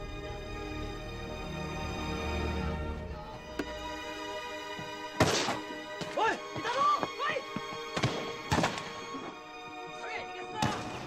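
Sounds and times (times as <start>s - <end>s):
orchestral film score: 0.0s - 11.0s.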